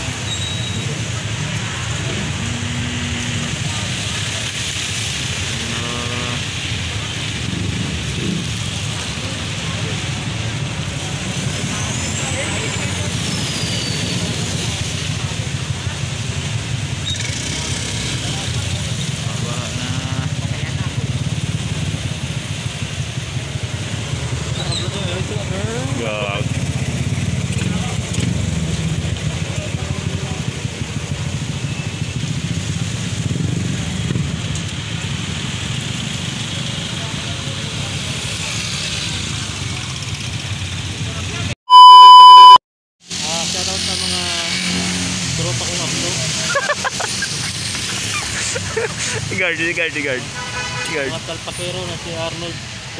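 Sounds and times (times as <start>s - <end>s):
tyre hiss on wet road: 45.3s - 52.9s.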